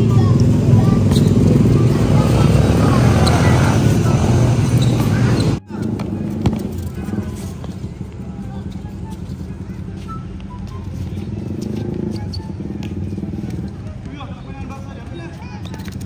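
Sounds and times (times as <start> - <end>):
voices in background: 0.0 - 16.0
brief high squeaks: 1.1 - 1.5, 4.7 - 5.6, 8.7 - 12.8, 15.2 - 16.0
ball being kicked: 4.8 - 7.7.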